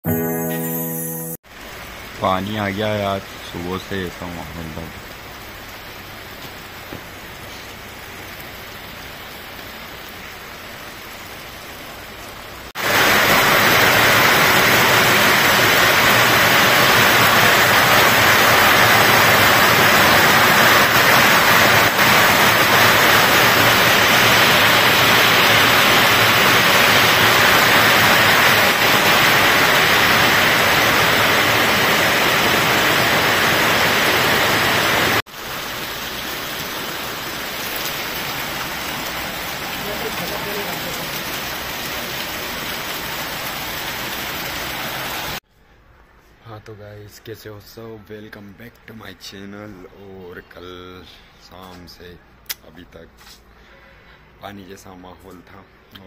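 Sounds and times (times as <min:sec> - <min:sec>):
rain falling on ground: 0:01.5 - 0:45.4.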